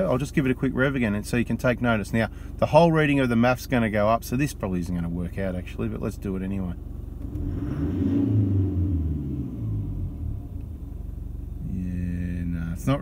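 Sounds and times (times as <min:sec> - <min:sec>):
diesel engine revving from idle: 0:07.0 - 0:13.0.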